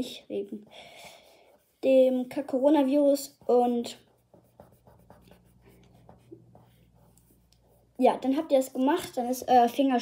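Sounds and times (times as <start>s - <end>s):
fingertip rubbing on paper: 1.1s - 8.3s.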